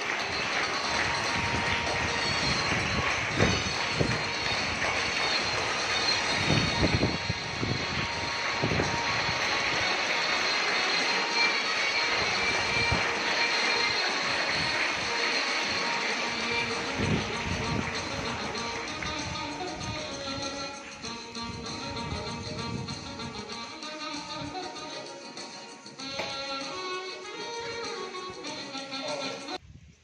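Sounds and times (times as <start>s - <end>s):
steady rushing noise: 0.0s - 20.1s
faint music: 0.0s - 29.6s.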